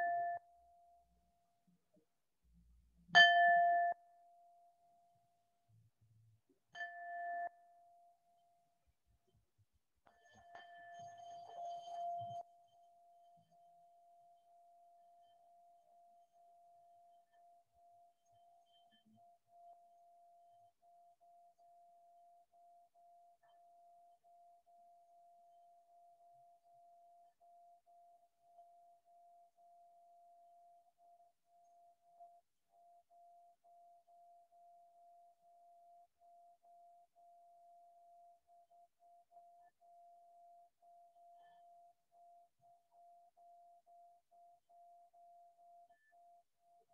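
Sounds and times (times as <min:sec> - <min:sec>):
metallic ringing tone: 0:10.1 - 0:16.4.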